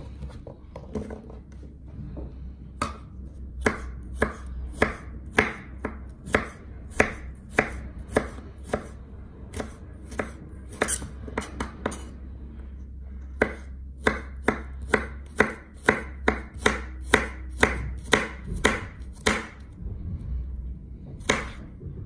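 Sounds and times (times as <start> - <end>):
knife chopping on cutting board: 3.6 - 12.1, 13.4 - 19.6, 21.2 - 21.7.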